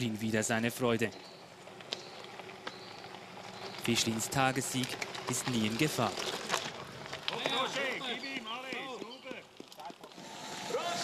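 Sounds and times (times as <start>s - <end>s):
voices shouting: 6.6s - 9.5s, 10.2s - 11.0s.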